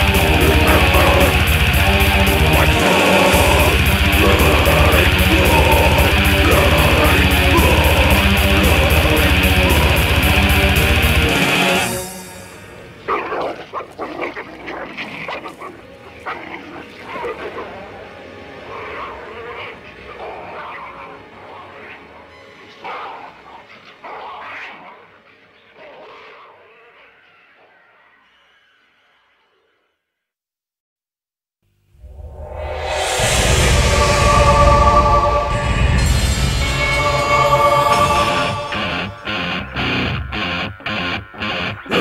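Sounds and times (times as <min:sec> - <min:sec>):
death metal with distorted guitars: 0:00.0 - 0:14.7, 0:32.1 - 0:42.0
animal-like cries and yelps: 0:13.0 - 0:28.7.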